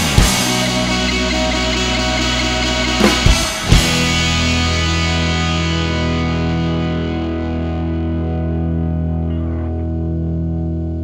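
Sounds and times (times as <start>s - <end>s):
distorted guitar chord ringing: 0.0s - 11.0s.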